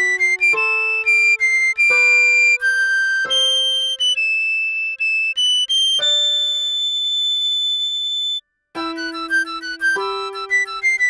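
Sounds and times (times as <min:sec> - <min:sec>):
piano chords: 0:00.0 - 0:04.2, 0:08.8 - 0:11.0
recorder melody: 0:00.0 - 0:11.0.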